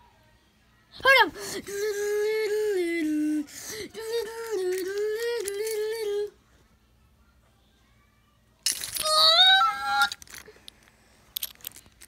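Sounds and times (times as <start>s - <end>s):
plastic toys clicking: 4.0s - 6.2s, 8.6s - 12.0s
child squealing: 9.0s - 10.2s.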